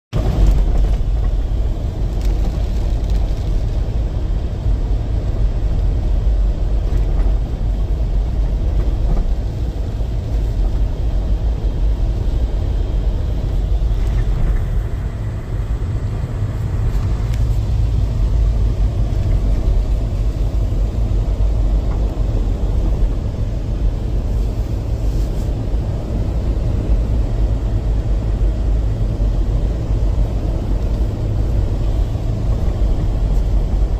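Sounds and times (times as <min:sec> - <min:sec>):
vehicle engine rumble: 0:00.1 - 0:33.9
tyres on slushy road: 0:00.2 - 0:33.9.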